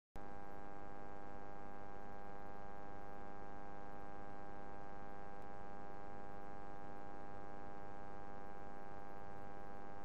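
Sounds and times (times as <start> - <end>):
electrical mains hum: 0.2 - 10.0.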